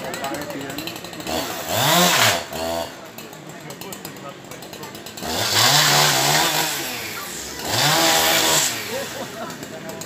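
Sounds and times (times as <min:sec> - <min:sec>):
chainsaw revving: 0:00.0 - 0:10.0.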